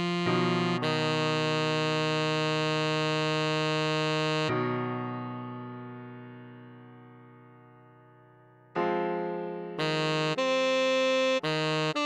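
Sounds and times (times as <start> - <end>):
saxophone holding long note: 0.0 - 4.8, 9.8 - 12.0.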